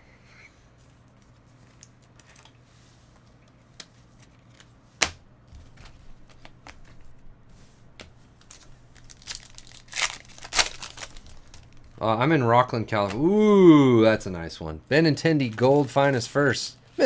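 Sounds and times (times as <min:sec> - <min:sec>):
card pack wrapper crinkling and tearing: 0:08.4 - 0:12.0, 0:15.4 - 0:16.5.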